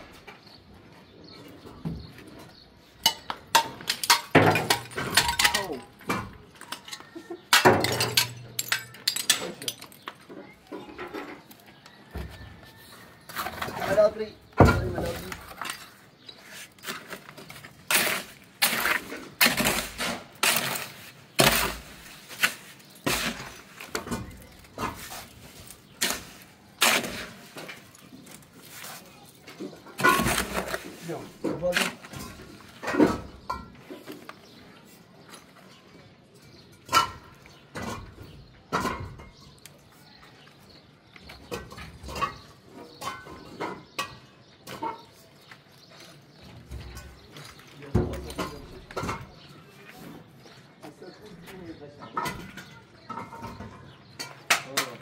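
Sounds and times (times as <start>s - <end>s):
sharp knocks and cracks: 52.2s - 55.0s.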